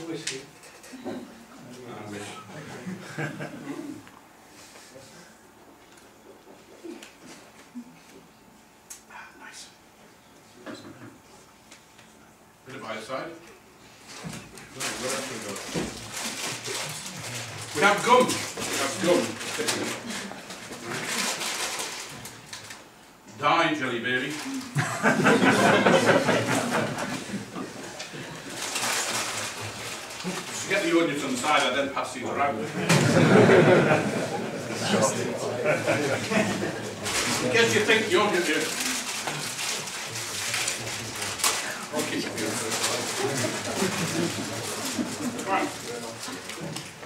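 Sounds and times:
plastic packet crinkling: 0:14.7 - 0:22.8, 0:28.5 - 0:30.8, 0:37.0 - 0:46.8
murmur of voices: 0:24.3 - 0:47.0.

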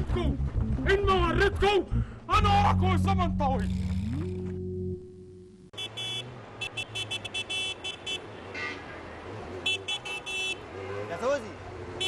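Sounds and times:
street traffic hum: 0:00.0 - 0:12.0
car horns beeping: 0:05.7 - 0:11.1.

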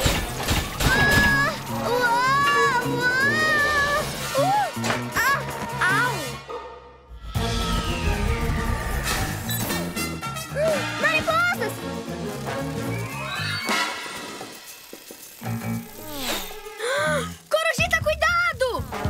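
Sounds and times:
lively cartoon background music: 0:00.0 - 0:19.0.

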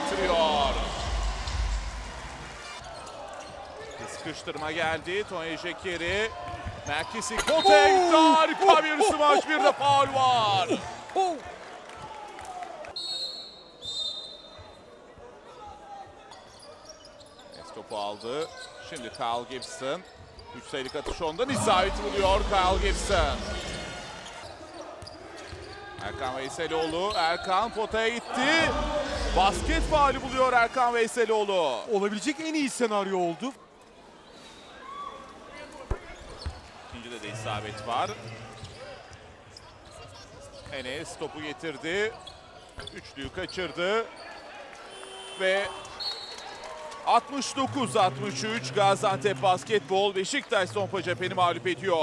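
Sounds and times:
crowd murmur: 0:00.0 - 0:02.8, 0:21.5 - 0:24.4, 0:28.4 - 0:30.5.

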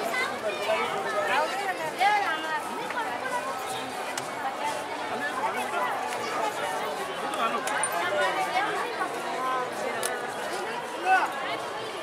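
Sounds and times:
chatter of overlapping voices: 0:00.0 - 0:12.0
street noise: 0:00.0 - 0:12.0.

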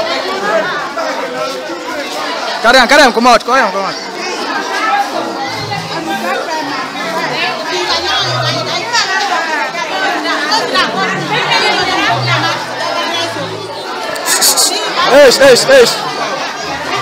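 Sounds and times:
crowd talking: 0:00.0 - 0:17.0.

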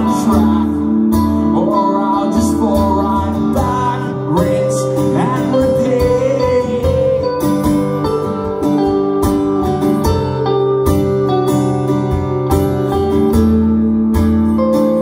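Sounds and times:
acoustic and electric guitars: 0:00.0 - 0:15.0.

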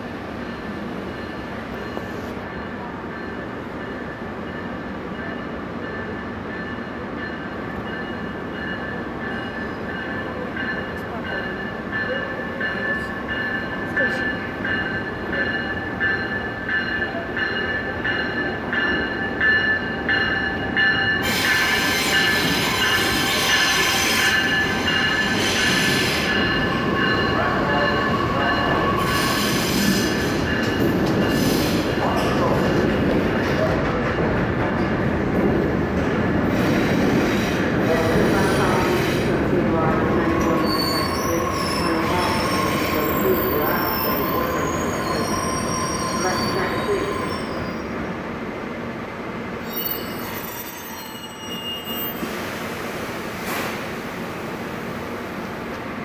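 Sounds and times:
wheels and brakes squealing: 0:40.4 - 0:48.0, 0:49.6 - 0:52.3.

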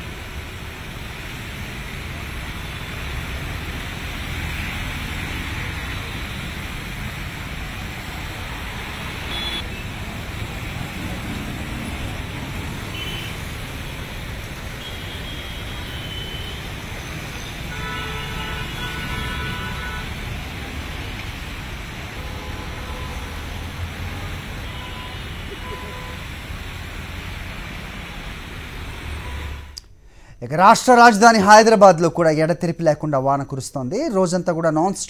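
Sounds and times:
traffic driving through water: 0:00.0 - 0:29.8.

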